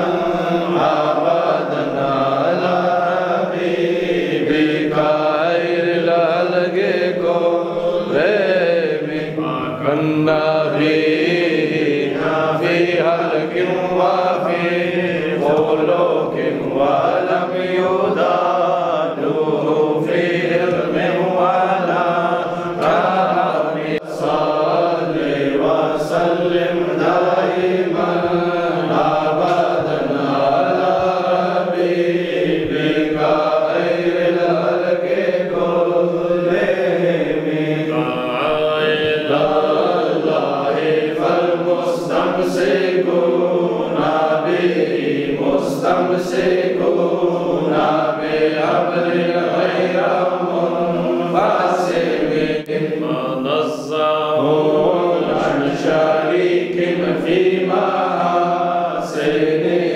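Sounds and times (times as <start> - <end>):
men chanting melodically: 0.0 - 59.9.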